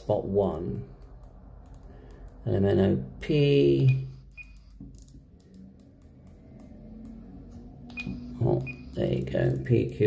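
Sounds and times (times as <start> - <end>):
high key beep: 3.8 - 4.8, 7.9 - 9.1.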